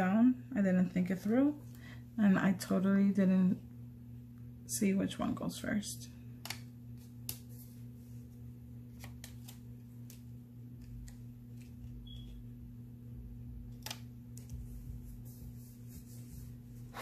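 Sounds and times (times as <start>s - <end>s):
low electrical hum: 0.0s - 17.0s
paper handling: 8.9s - 12.5s.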